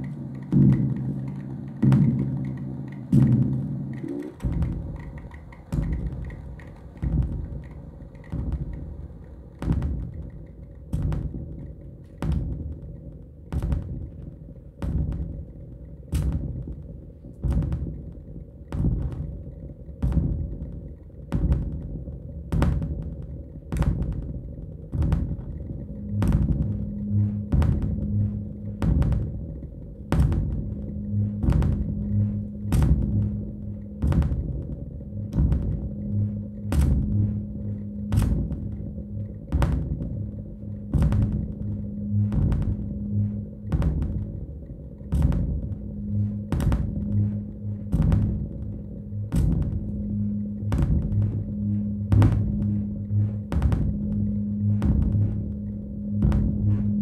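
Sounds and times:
low electronic thuds: 0.0 - 57.0
low hum with fluttering throb: 0.0 - 57.0
steady electronic drone: 0.0 - 57.0.

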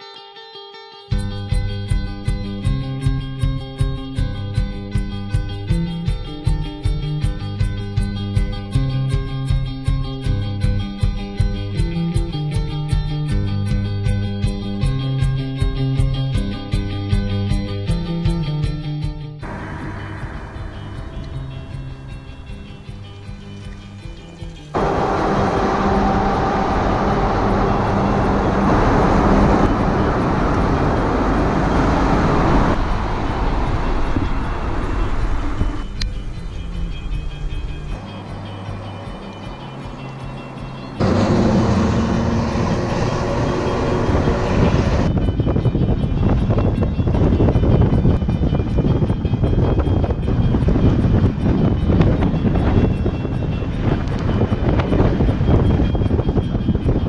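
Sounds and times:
road noise from moving vehicle: 19.4 - 57.0
truck driving: 19.4 - 57.0.

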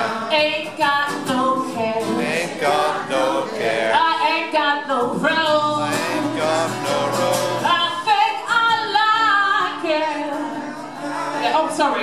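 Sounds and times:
woman singing: 0.0 - 2.3, 3.9 - 6.4, 7.5 - 10.6
strummed acoustic guitar: 0.0 - 11.8
man singing: 2.1 - 4.1, 5.7 - 7.8.

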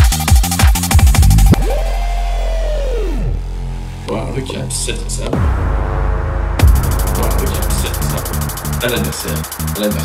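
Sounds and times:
steady low bass: 0.9 - 10.0.

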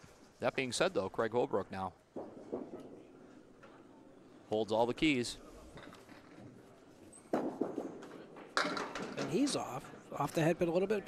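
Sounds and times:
faint murmur of voices: 2.2 - 11.0.

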